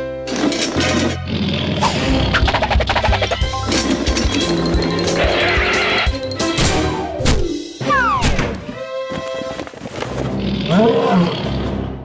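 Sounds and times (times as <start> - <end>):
cartoon background music: 0.0 - 9.6.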